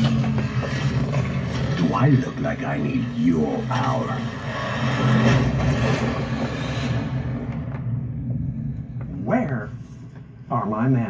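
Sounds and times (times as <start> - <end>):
loud rushing rumbling noise: 0.0 - 9.6
steady low drone: 0.0 - 11.0.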